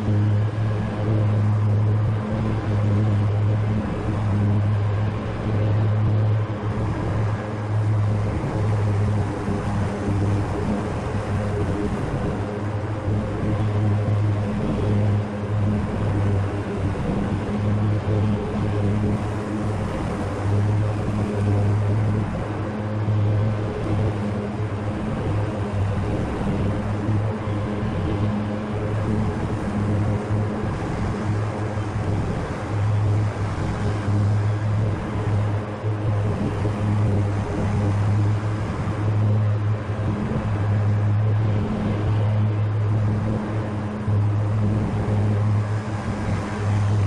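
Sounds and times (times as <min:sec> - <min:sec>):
riding mower engine hum: 0:00.0 - 0:47.0.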